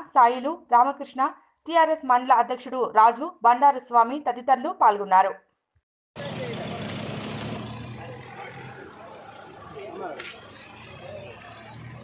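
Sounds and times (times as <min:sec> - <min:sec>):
people talking: 0:06.2 - 0:07.0, 0:07.8 - 0:11.8
car engine idling: 0:06.2 - 0:12.0.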